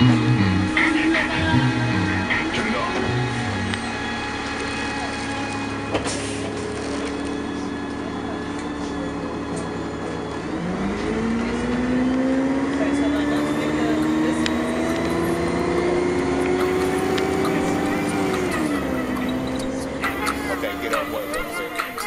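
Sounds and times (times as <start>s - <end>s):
vehicle motor whine: 0.0s - 22.0s.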